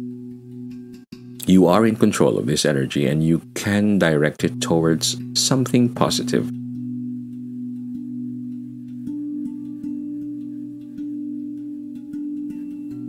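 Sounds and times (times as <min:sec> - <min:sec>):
calm ambient music: 0:00.0 - 0:13.0.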